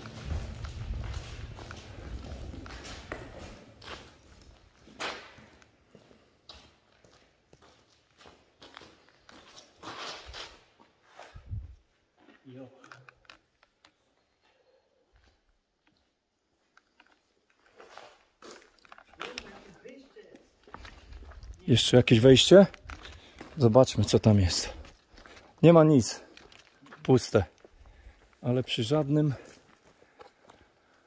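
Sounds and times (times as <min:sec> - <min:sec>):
low rumble: 0:00.0 - 0:03.6
footsteps crunching on gritty dirt: 0:00.0 - 0:12.5, 0:16.8 - 0:31.0.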